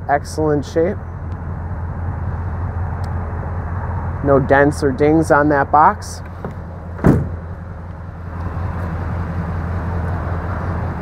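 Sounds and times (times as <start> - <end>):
vehicle engine idling: 0.0 - 11.0
sharp knock: 7.0 - 7.4.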